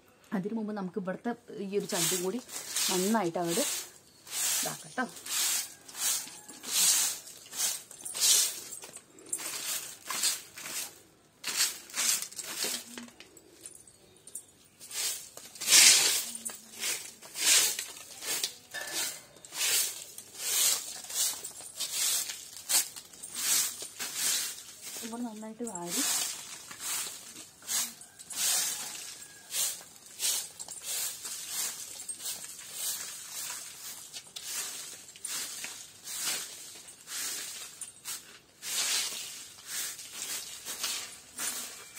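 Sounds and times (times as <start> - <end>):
broom sweeping leaves on paving: 1.8 - 13.0, 14.9 - 41.9.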